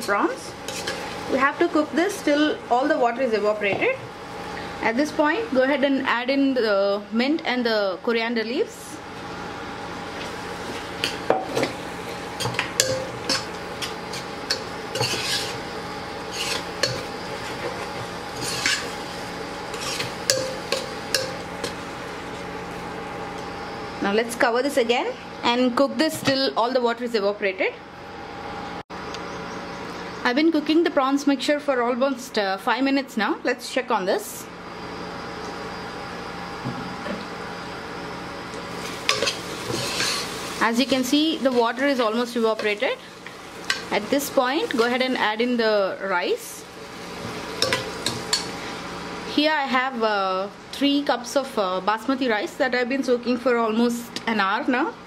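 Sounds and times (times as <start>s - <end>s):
food sizzling in a pot: 0.0s - 2.7s, 9.0s - 23.9s, 38.5s - 51.0s
steady low hum: 0.0s - 55.0s
metal spoon scraping a pot: 0.7s - 1.1s, 14.1s - 15.6s, 16.2s - 17.1s, 18.3s - 18.9s, 19.7s - 21.4s, 39.1s - 40.4s.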